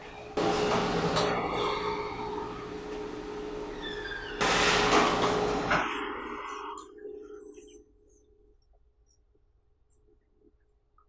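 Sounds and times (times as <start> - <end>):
faint steady hum: 5.5 - 11.0.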